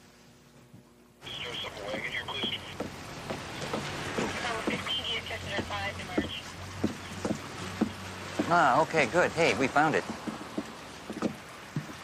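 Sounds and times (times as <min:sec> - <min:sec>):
distant traffic hum: 0:01.2 - 0:12.0.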